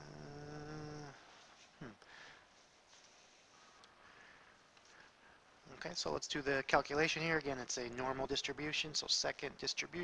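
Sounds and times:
man humming: 0.0s - 2.1s.

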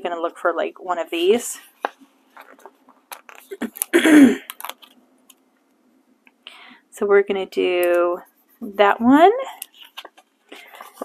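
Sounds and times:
soft breath: 6.4s - 6.9s, 10.5s - 11.0s.

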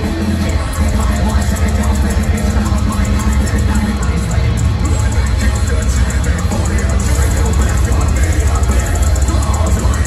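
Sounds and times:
fast cymbal hits: 0.0s - 10.0s
metal band playing live: 0.0s - 10.0s.

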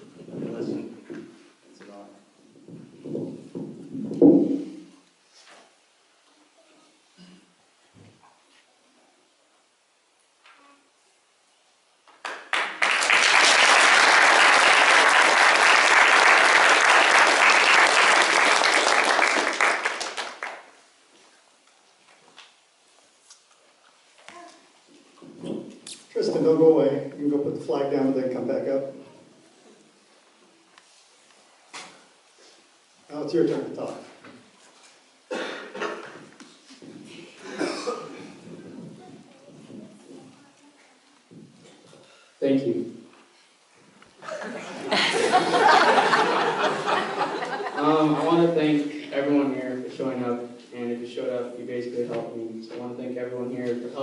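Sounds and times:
audience applauding: 12.2s - 20.7s
person coughing: 35.3s - 36.1s, 37.1s - 38.4s.

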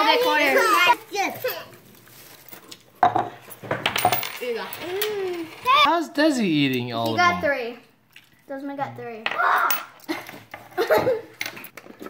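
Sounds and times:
coins clinking on a table: 2.5s - 5.7s.

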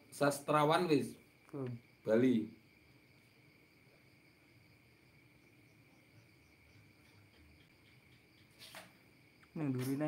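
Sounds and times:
crickets chirring: 0.0s - 10.0s.

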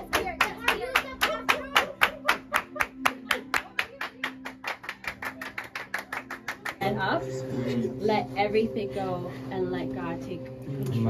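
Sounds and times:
hands clapping fast: 0.0s - 6.8s.

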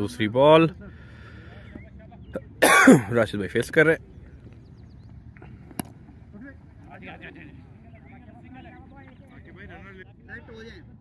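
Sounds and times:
quiet open-air background: 0.0s - 11.0s
person clearing throat: 2.6s - 3.1s.

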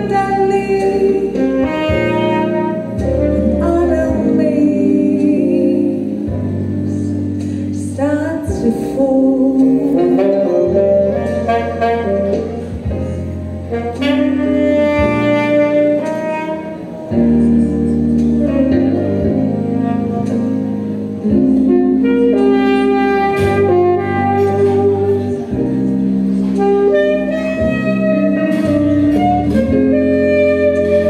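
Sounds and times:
saxophone playing jazz melody: 0.0s - 31.0s.

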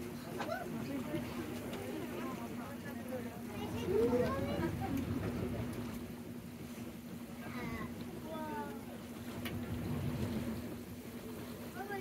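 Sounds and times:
water noise: 0.0s - 12.0s.

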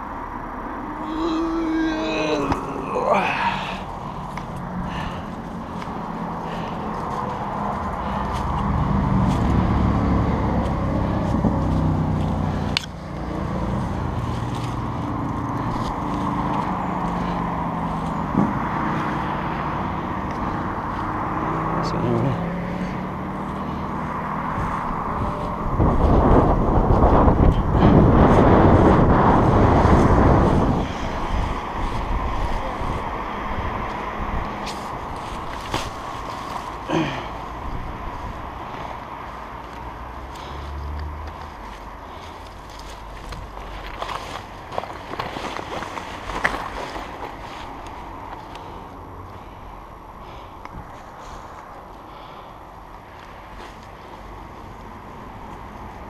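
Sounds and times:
low rush of noise: 0.0s - 44.8s
motor traffic engines droning: 0.0s - 56.0s.

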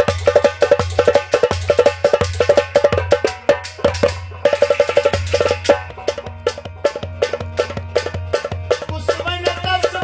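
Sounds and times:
hand drum strokes: 0.0s - 10.0s
harmonium chords: 5.0s - 10.0s.

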